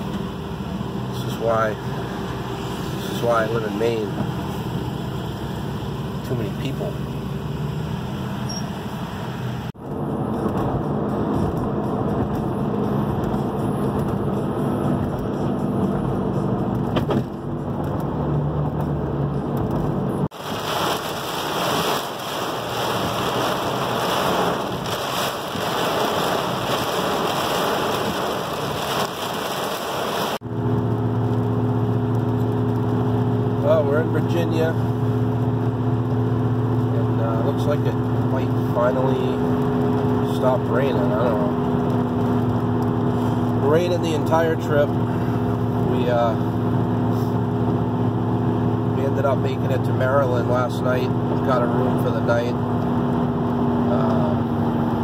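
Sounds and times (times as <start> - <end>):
car engine hum: 0.0 - 55.0
heavy rain on windshield: 19.3 - 53.8.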